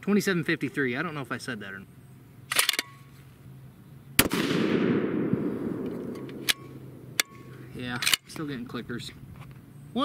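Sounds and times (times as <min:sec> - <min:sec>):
rifle shot echoing: 0:04.2 - 0:07.6.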